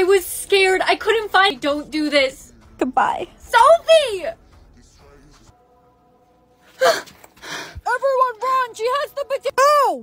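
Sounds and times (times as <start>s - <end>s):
woman gasping: 6.7s - 7.8s.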